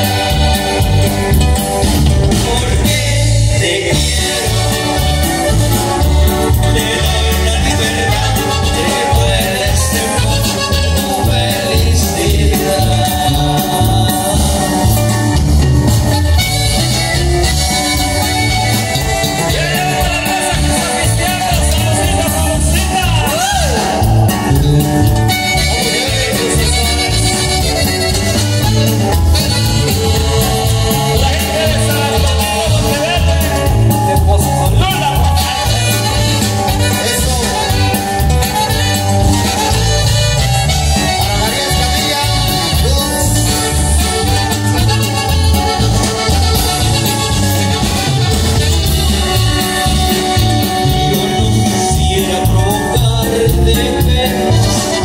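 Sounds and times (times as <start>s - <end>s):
accordion: 0.0s - 55.0s
bajo sexto: 0.0s - 55.0s
bass and drums: 0.0s - 55.0s
live band playing: 0.0s - 55.0s.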